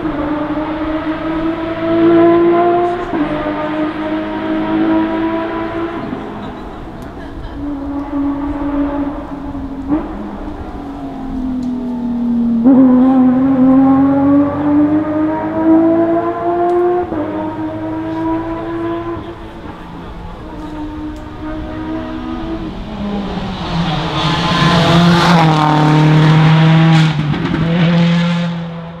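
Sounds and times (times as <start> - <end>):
car engine accelerating hard: 0.0 - 29.0.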